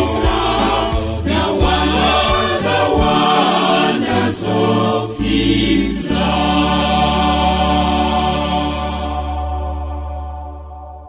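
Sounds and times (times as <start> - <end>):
choir singing a sustained chord: 0.0 - 11.0.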